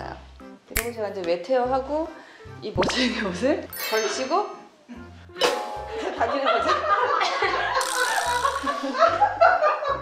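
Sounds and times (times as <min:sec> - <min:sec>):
woman laughing: 0:06.0 - 0:10.0.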